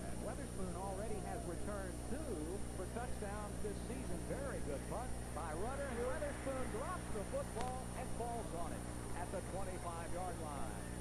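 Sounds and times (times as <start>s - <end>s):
low electrical hum: 0.0s - 11.0s
person talking: 0.0s - 11.0s.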